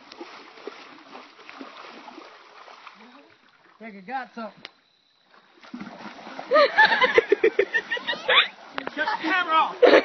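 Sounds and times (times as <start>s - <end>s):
water splashing and sloshing: 0.0s - 10.0s.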